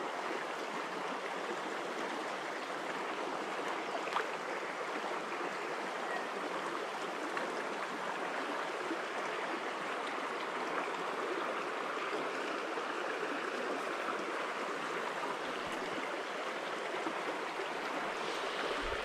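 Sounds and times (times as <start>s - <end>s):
stream water running over rocks: 0.0s - 19.0s.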